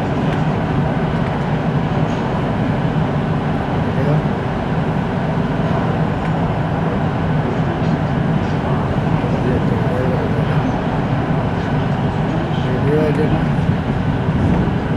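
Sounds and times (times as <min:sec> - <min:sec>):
train wheels rumbling on rail: 0:00.0 - 0:14.9.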